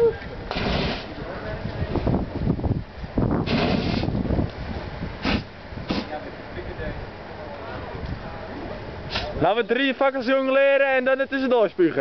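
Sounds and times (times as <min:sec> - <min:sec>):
fireball rushing burst: 0:00.4 - 0:02.6, 0:03.2 - 0:06.3.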